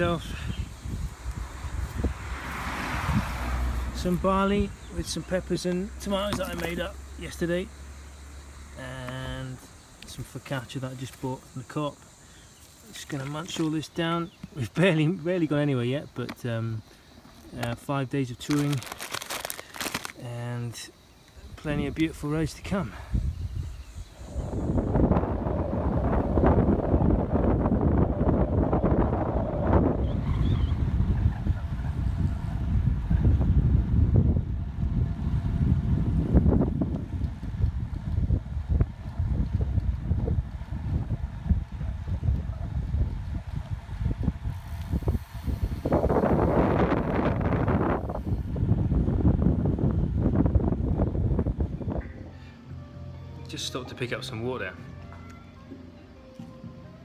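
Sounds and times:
wind buffeting microphone: 0.0s - 5.4s, 21.5s - 52.2s.

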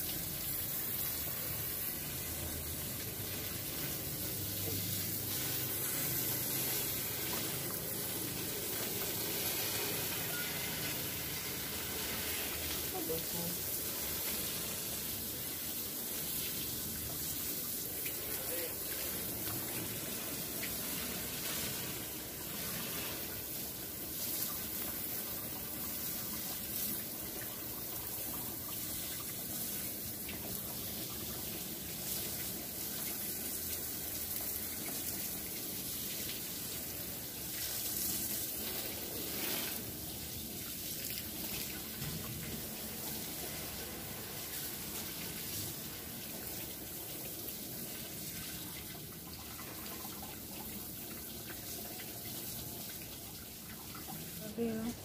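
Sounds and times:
hose water spraying on car: 0.0s - 55.0s.

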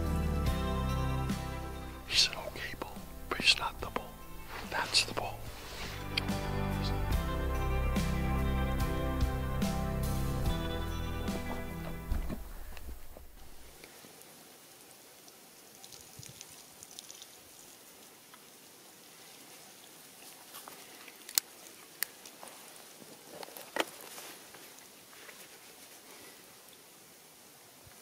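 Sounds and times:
outdoor background hiss: 0.0s - 28.0s.

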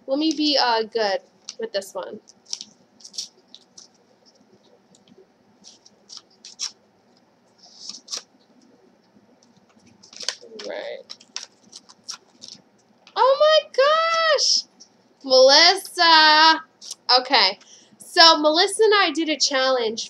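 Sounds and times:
paper crinkling and rustling: 1.3s - 13.2s.

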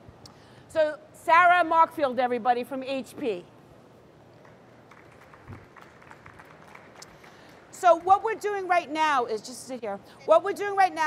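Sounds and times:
audience clapping: 4.4s - 8.2s.

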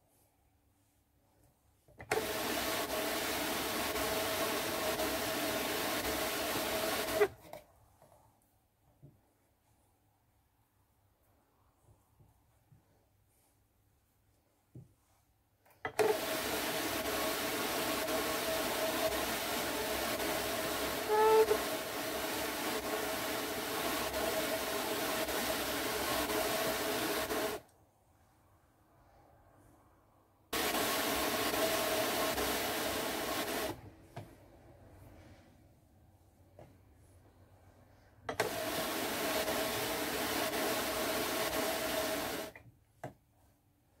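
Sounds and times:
drum carder scratchy whir: 2.1s - 7.4s, 15.9s - 27.6s, 30.6s - 33.8s.

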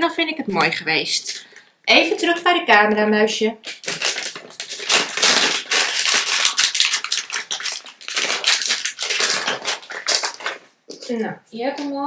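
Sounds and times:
cat crunching dry treats: 3.7s - 11.2s.

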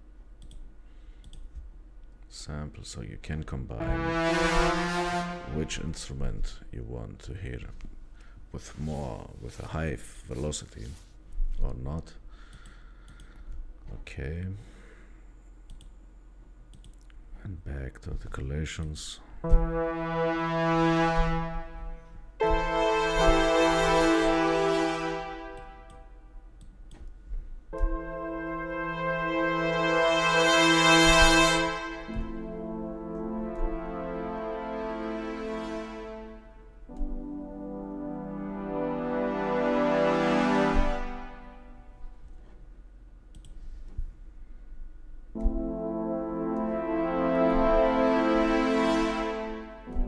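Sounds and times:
faint clicks: 0.4s - 2.2s, 43.3s - 43.6s
brass ensemble holding chord: 3.6s - 6.6s, 19.4s - 26.3s, 27.7s - 42.2s, 45.4s - 50.0s.

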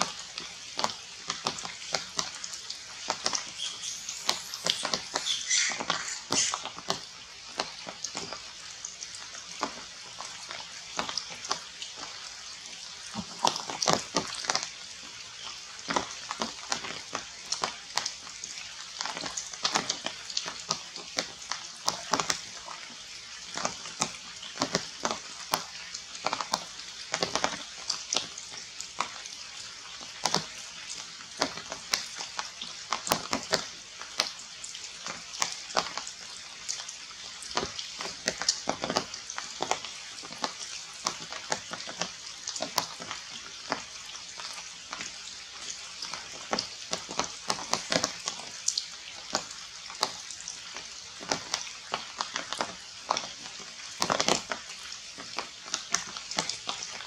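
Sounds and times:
rain falling on leaves: 0.0s - 57.0s.

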